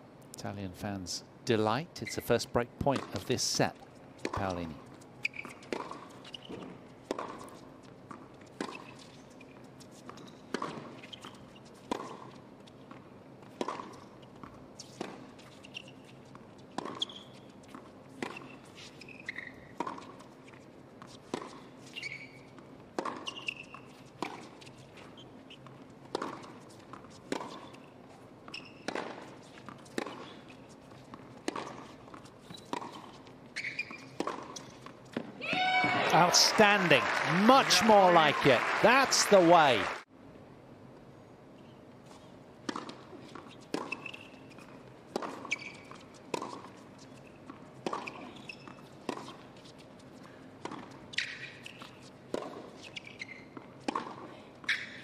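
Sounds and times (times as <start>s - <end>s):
shoe squeaks: 2.0s - 2.3s, 4.4s - 11.8s, 14.0s - 35.2s, 43.2s - 46.2s, 47.0s - 50.0s, 51.0s - 53.8s, 54.6s - 55.0s
tennis ball bouncing: 5.3s - 9.0s, 13.5s - 15.8s, 25.6s - 39.8s, 43.6s - 46.8s, 50.6s - 54.8s.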